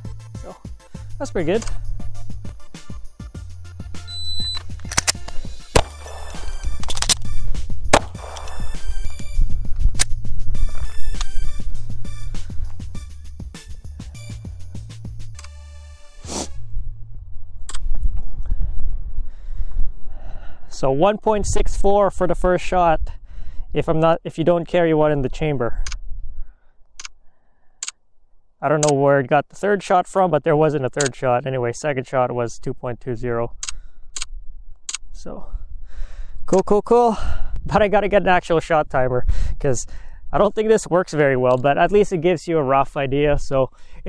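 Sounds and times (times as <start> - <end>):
background music: 0.0 - 16.7
shot timer beep: 4.0 - 4.6
pistol shots: 4.9 - 7.3, 7.9 - 8.8.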